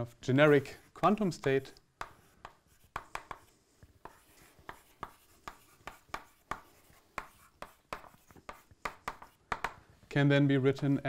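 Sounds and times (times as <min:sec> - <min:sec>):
chalk tapping and scraping on chalkboard: 0:00.5 - 0:09.9.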